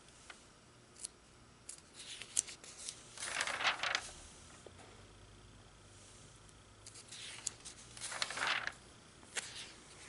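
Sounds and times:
paper crackles: 0:02.0 - 0:04.2, 0:06.9 - 0:10.0
magazine page swishing over: 0:02.8 - 0:04.3, 0:07.1 - 0:09.8.

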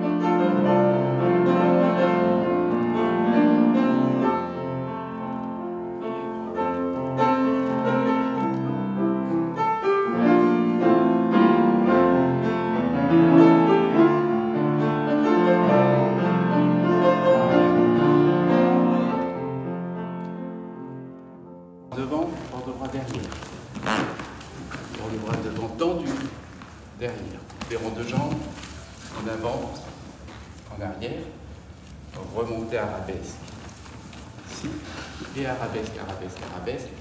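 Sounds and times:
solo piano classical music: 0:00.0 - 0:37.0.

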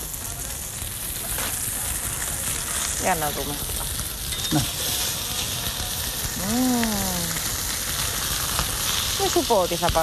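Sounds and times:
burger patties sizzling in pan: 0:00.0 - 0:10.0.

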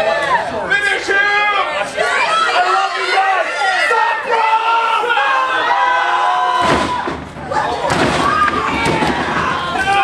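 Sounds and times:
crowd shouting and yelling: 0:00.0 - 0:10.0.

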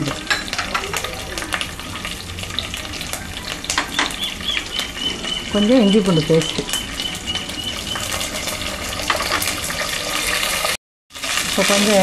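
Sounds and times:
hot oil sizzling in a pan: 0:00.0 - 0:12.0.

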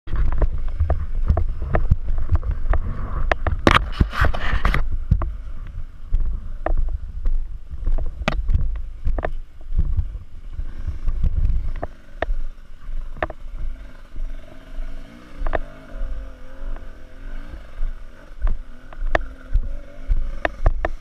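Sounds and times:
bike knocking and clattering: 0:00.1 - 0:10.2, 0:17.9 - 0:21.0
dirt bike engine: 0:00.1 - 0:21.0
low rumble: 0:00.1 - 0:21.0.

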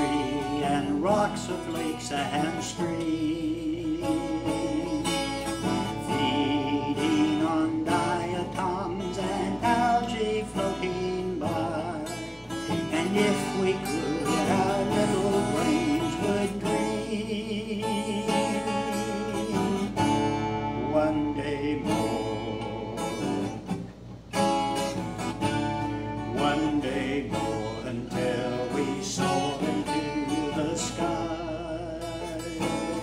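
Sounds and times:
man singing with vibrato: 0:00.0 - 0:23.7, 0:25.4 - 0:33.0
acoustic guitar strumming: 0:00.0 - 0:33.0.

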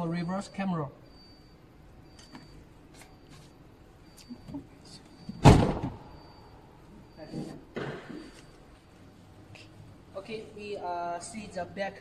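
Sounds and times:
short high beeps: 0:00.0 - 0:08.6
car door shutting: 0:05.3 - 0:06.1.

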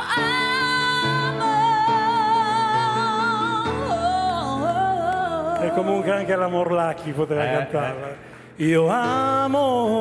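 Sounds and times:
man and woman singing duet: 0:00.0 - 0:06.6, 0:07.2 - 0:10.0
piano accompaniment: 0:00.0 - 0:10.0.

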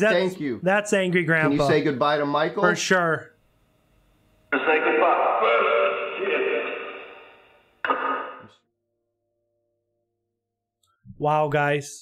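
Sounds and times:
thin radio-like voice: 0:04.5 - 0:07.2, 0:07.8 - 0:08.5
radio noise: 0:04.5 - 0:08.6.

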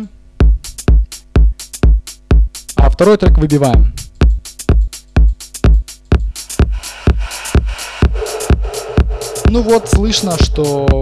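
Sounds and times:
kick drum: 0:00.4 - 0:02.9, 0:03.8 - 0:11.0
electronic dance music: 0:00.4 - 0:11.0.

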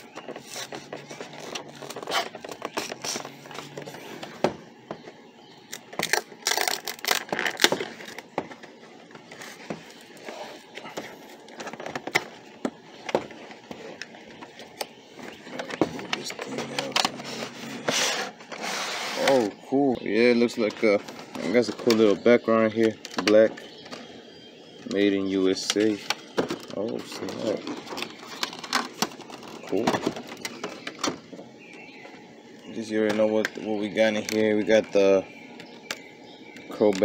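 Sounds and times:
packaging rustling and scraping: 0:00.0 - 0:04.4, 0:05.8 - 0:19.6, 0:25.6 - 0:31.4.

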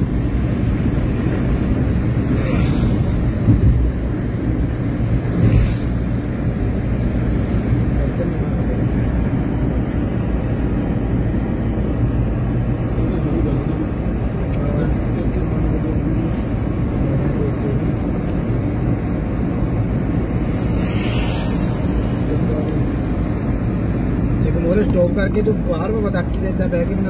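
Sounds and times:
car road and engine rumble: 0:00.0 - 0:27.0.

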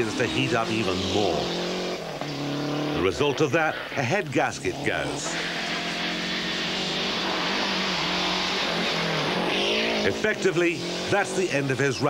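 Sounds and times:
rally car engine running: 0:00.0 - 0:03.4, 0:04.2 - 0:12.0.

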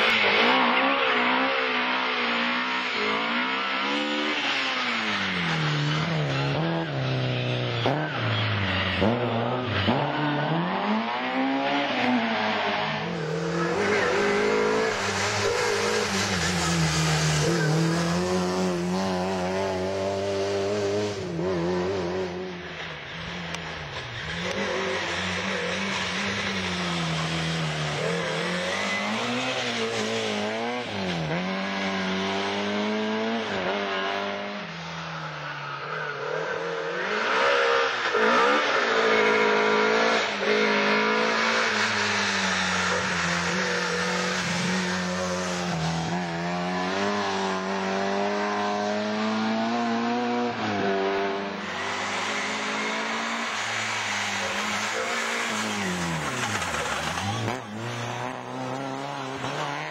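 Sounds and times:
rally car engine revving: 0:00.0 - 0:35.0, 0:36.1 - 0:59.9.

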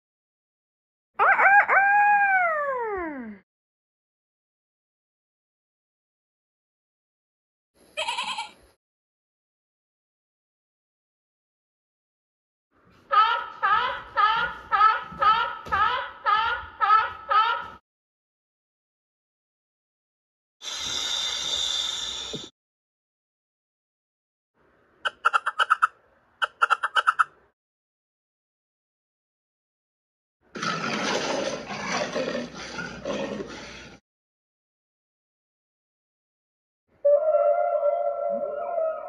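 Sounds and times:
wavering bleat: 0:08.0 - 0:08.6.

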